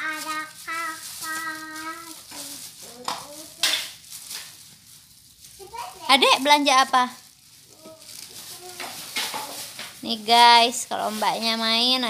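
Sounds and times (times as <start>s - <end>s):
faint child vocal sounds: 0.0s - 3.6s
plastic bag crinkling: 0.0s - 12.0s.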